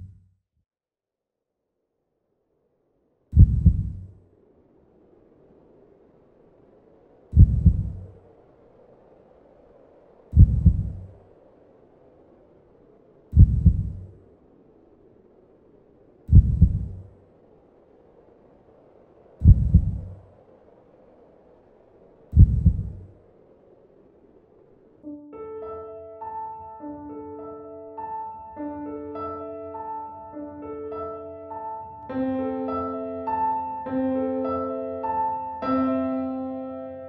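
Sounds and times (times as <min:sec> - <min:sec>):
heartbeat thumps: 0:03.4 - 0:04.1, 0:07.4 - 0:08.1, 0:10.4 - 0:11.1, 0:13.3 - 0:14.1, 0:16.3 - 0:17.1, 0:19.4 - 0:20.2, 0:22.4 - 0:23.0.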